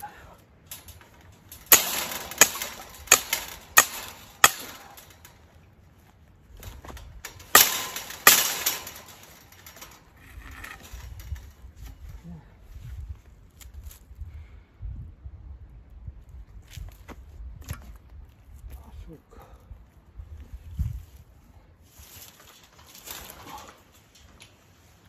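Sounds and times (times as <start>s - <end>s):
metallic strikes on wire fence: 0.6s - 5.6s, 6.6s - 11.7s.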